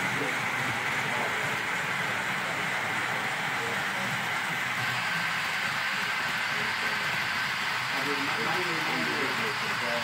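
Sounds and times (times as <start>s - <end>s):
hissing room noise: 0.0s - 10.0s.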